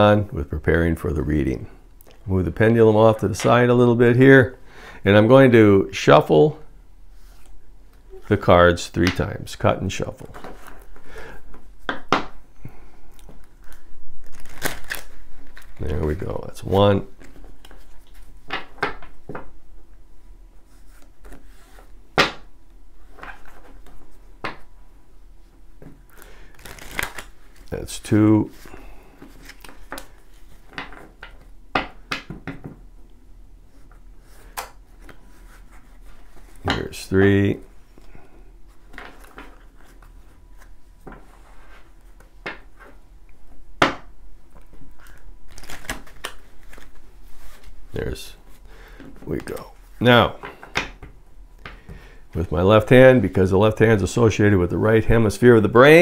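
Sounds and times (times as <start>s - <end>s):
cards riffle shuffling: 13.2s - 18.8s, 26.1s - 30.8s, 44.6s - 48.6s.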